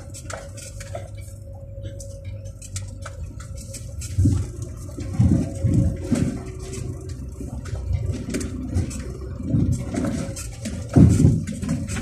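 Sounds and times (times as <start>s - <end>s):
low engine hum: 0.0s - 12.0s
wheels rumbling over stones: 0.0s - 12.0s.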